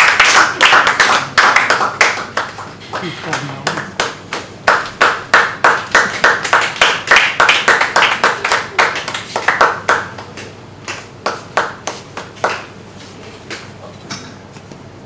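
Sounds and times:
hands clapping: 0.0s - 12.8s, 13.5s - 13.8s.

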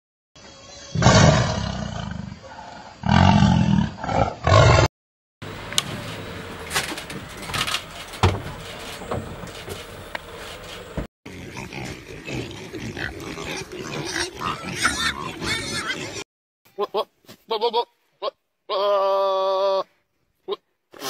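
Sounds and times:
pigs grunting and oinking: 0.9s - 4.9s, 11.3s - 16.2s
goat bleat: 16.8s - 19.8s.

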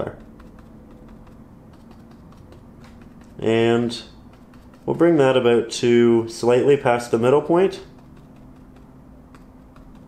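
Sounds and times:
paintbrush tapping on canvas: 0.0s - 5.2s, 7.8s - 10.0s
low steady hum: 0.0s - 10.0s.

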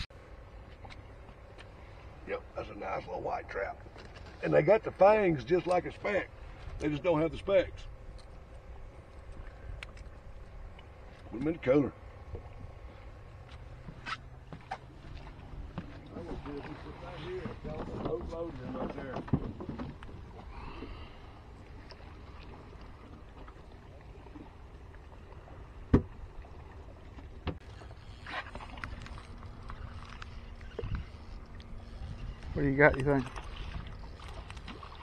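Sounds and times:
water noise: 0.0s - 35.0s
wind noise: 29.6s - 34.8s.

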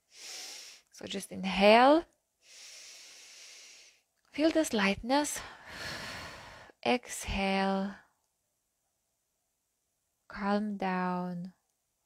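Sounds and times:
woman inhaling softly: 0.1s - 0.9s, 2.4s - 4.0s.

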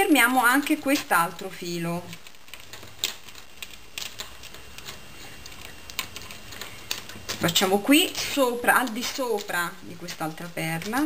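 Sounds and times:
beads and wire clicking together: 0.1s - 11.0s.

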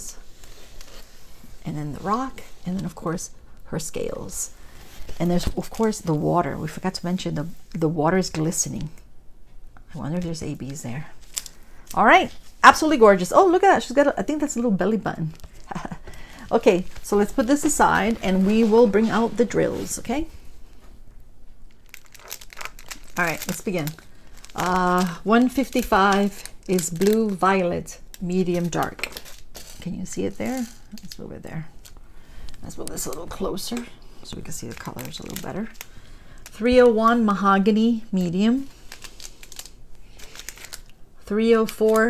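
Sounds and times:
plastic bags crinkling: 0.2s - 3.0s, 10.6s - 20.4s, 21.6s - 42.0s.

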